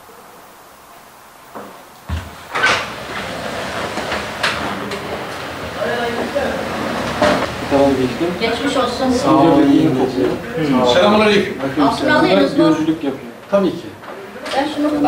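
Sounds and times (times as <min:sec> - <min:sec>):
indoor clatter: 0:01.6 - 0:11.8
murmuring voices: 0:02.7 - 0:15.0.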